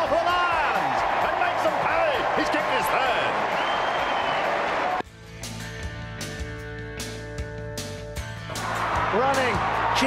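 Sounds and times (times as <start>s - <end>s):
broadcast crowd noise: 0.0s - 5.0s.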